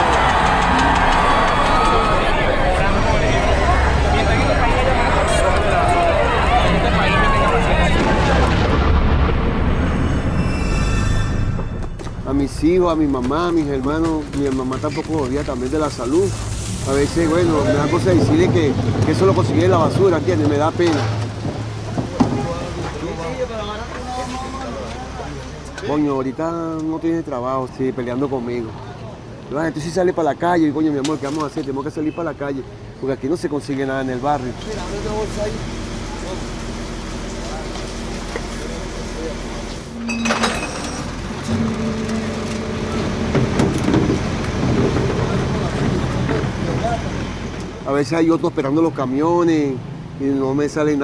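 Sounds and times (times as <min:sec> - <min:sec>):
faint voices: 0:00.0 - 0:08.9
diesel engine humming: 0:00.0 - 0:10.4, 0:32.6 - 0:48.5
rushing street noise: 0:00.0 - 0:51.0.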